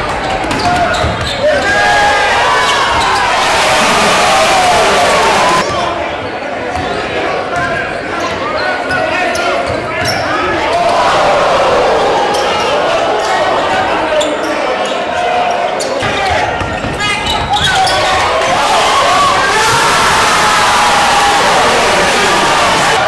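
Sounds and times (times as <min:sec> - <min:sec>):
voices of players and crowd: 0:00.0 - 0:23.0.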